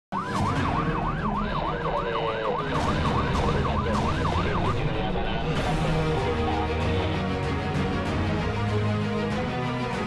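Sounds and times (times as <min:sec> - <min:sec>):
siren yelping: 0:00.1 - 0:06.9.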